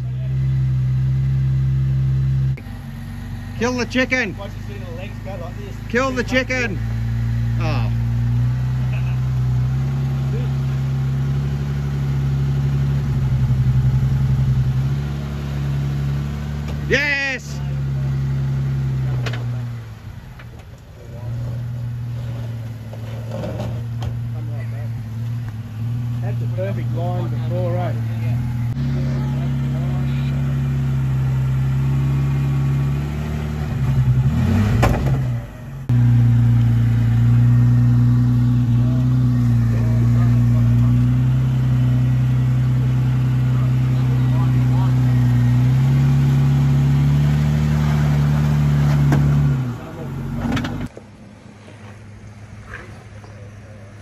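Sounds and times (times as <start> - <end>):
engine running under load: 0.0 - 54.0.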